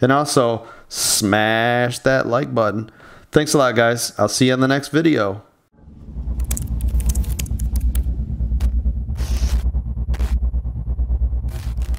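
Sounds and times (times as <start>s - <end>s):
static crackles and bursts: 5.8s - 10.7s, 11.4s - 11.9s
pulsing deep bass rumble: 5.8s - 11.9s.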